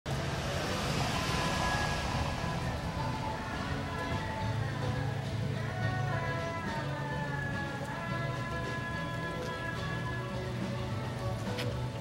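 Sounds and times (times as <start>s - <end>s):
heavy low rumble: 0.1s - 12.0s
street background noise: 0.1s - 12.0s.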